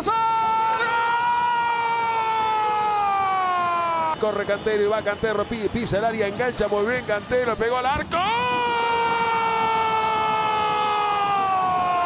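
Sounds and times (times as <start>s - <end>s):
commentator shouting goal cry: 7.8s - 12.0s.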